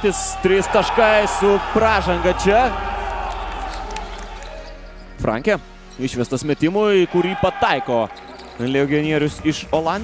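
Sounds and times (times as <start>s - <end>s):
players' voices: 0.0s - 10.0s.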